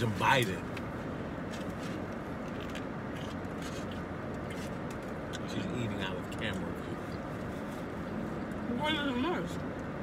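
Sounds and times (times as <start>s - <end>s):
car cabin hum: 0.0s - 10.0s.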